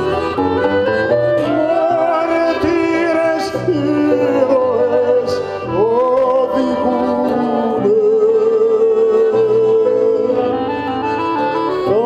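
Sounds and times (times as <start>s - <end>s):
accordion: 0.0s - 12.0s
person singing long wavering notes: 0.0s - 12.0s
plucked strings: 0.0s - 12.0s.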